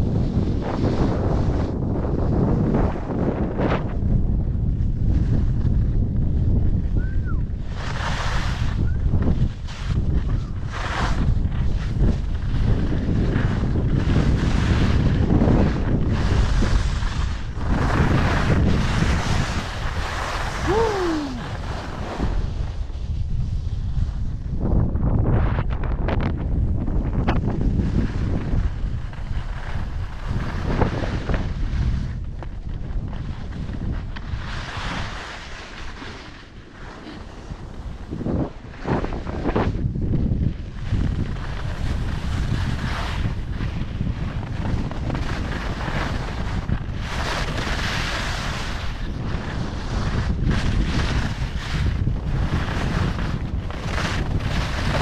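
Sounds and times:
skis scraping over snow: 0.0s - 55.0s
wind buffeting microphone: 0.0s - 55.0s.

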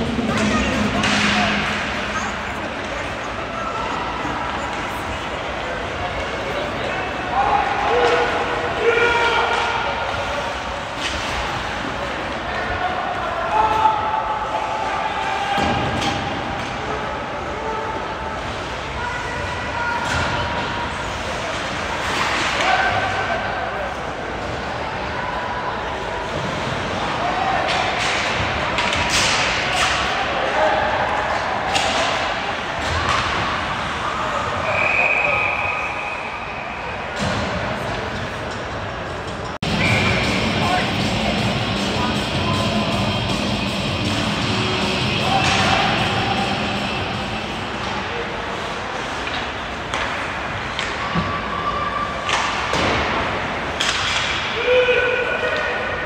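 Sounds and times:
puck and sticks clacking: 0.1s - 3.0s, 15.3s - 17.0s, 27.6s - 30.4s, 31.2s - 33.5s, 45.3s - 46.9s, 48.9s - 51.3s, 52.2s - 54.6s
players shouting: 6.4s - 24.2s, 39.6s - 49.2s
referee's whistle: 34.6s - 36.7s, 39.7s - 40.5s.

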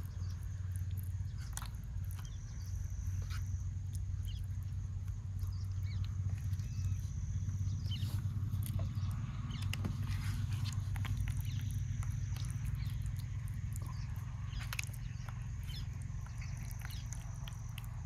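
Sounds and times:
fingers squelching wet paste: 0.0s - 7.1s, 8.0s - 18.0s
steady low hum: 0.0s - 18.0s.

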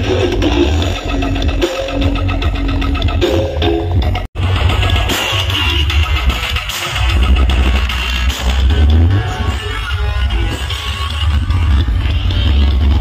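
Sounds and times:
loud music with booming bass: 0.0s - 13.0s.

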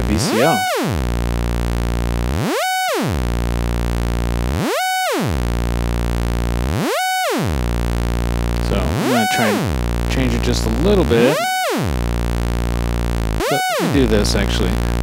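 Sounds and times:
synthesizer drone sweeping pitch: 0.0s - 15.0s.

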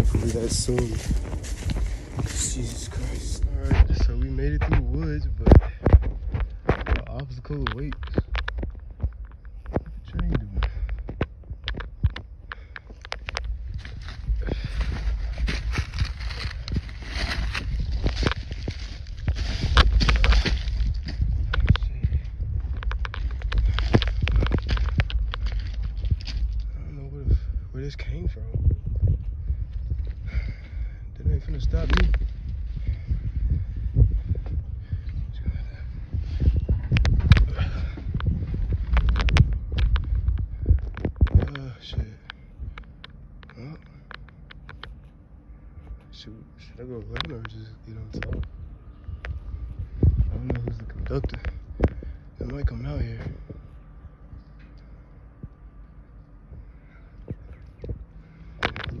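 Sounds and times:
footsteps crunching on gravel: 0.0s - 45.1s, 45.8s - 54.1s
wind rumble on microphone: 0.0s - 59.0s.

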